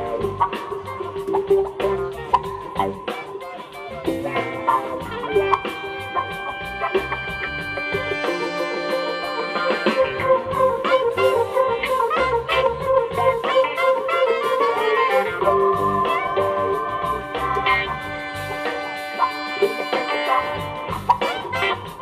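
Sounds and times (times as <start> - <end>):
drums: 0.0 - 22.0
electric keyboard: 0.0 - 22.0
horn section melody: 3.7 - 22.0.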